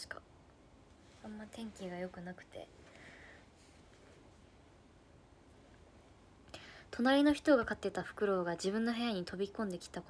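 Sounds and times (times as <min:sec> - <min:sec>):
faint breathy hiss: 0:00.0 - 0:07.1.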